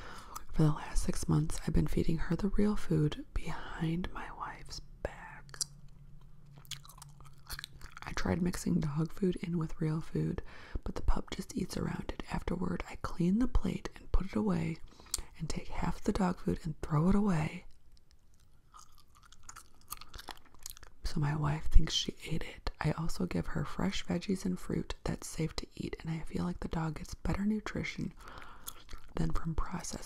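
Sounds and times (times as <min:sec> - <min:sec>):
gum chewing mouth clicks: 0:05.4 - 0:08.1, 0:18.0 - 0:21.0, 0:28.4 - 0:29.2.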